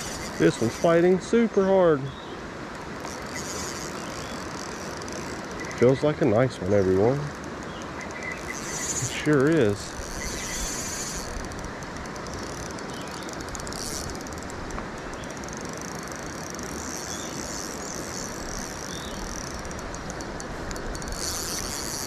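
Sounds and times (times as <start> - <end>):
fishing reel drag buzzing: 0.0 - 22.0.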